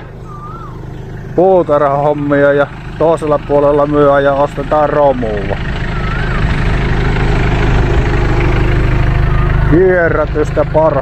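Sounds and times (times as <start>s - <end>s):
engine idling: 0.0s - 11.0s
faint wavering whistle: 0.1s - 1.4s, 5.9s - 6.6s, 9.2s - 9.7s.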